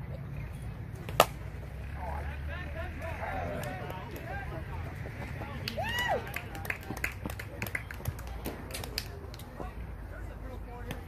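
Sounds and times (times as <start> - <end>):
bat striking ball: 1.0 - 1.5
players shouting: 1.8 - 6.6.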